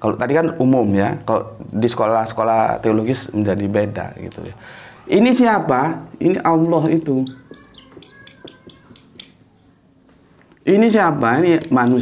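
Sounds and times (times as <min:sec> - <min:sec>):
whiteboard marker squeaking: 0:06.2 - 0:09.4, 0:11.2 - 0:12.0.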